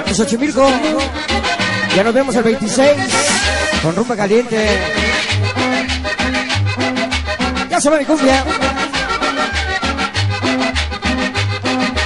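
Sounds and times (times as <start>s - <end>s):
accordion melody: 0.0s - 12.0s
pulsing bass line: 0.0s - 12.0s.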